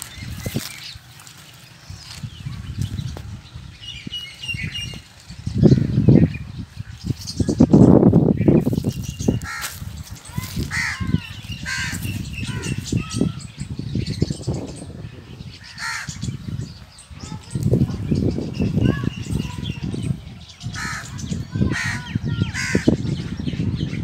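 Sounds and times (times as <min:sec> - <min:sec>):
bird calls: 0:00.0 - 0:24.0
wind buffeting microphone: 0:00.0 - 0:24.0
crows cawing: 0:09.4 - 0:12.9, 0:15.6 - 0:16.2, 0:20.7 - 0:23.0.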